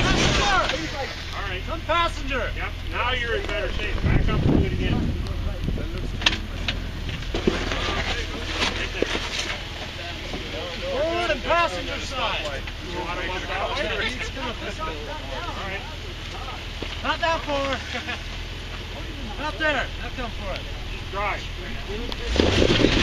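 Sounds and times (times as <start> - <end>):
engine humming: 0.0 - 23.0.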